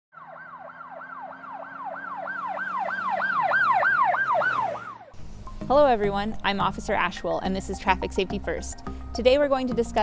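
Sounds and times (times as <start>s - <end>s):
police siren yelping: 0.1s - 5.2s.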